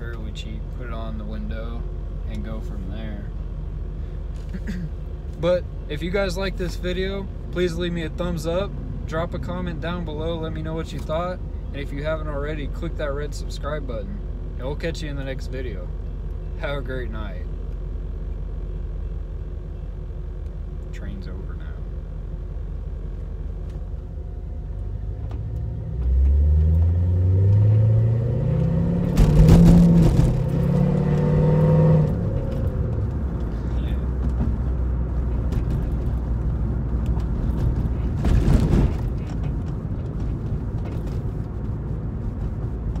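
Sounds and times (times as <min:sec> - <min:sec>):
car engine accelerating: 0:22.7 - 0:43.0
short thump: 0:29.0 - 0:30.6.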